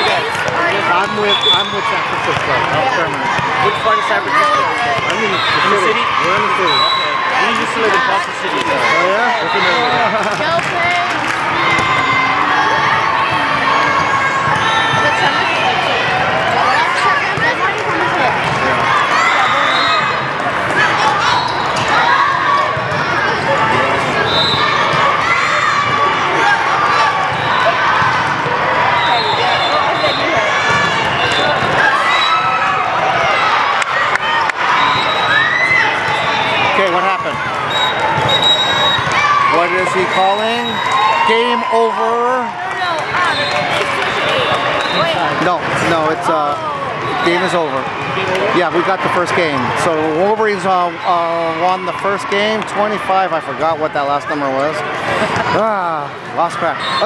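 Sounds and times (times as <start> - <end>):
crowd babble and shouts in echoing hall: 0.0 - 57.0
volleyballs being hit and bouncing: 0.1 - 6.7, 7.4 - 41.2, 42.4 - 48.5.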